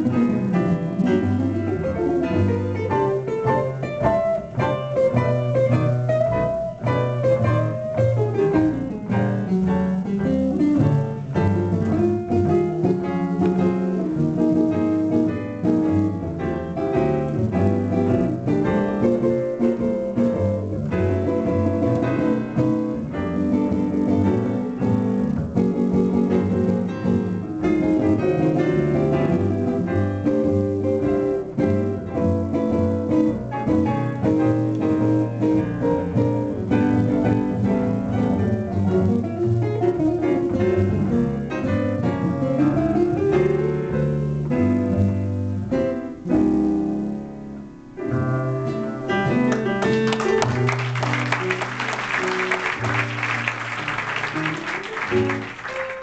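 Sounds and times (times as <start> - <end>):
double bass: 0.0 - 56.0
guitar: 0.0 - 56.0
piano: 0.0 - 56.0
audience applause: 49.5 - 56.0.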